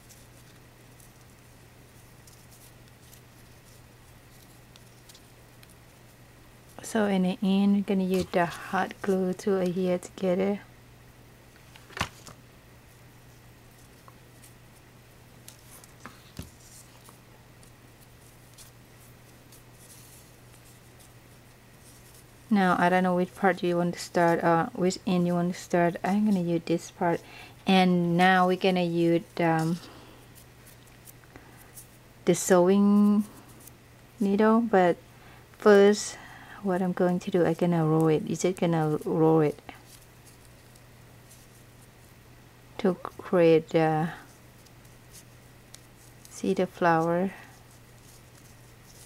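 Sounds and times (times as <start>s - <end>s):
fabric ribbon rustling: 0.0s - 10.2s, 11.6s - 32.0s, 36.8s - 42.2s, 43.0s - 49.0s
faint low hum: 0.0s - 49.0s.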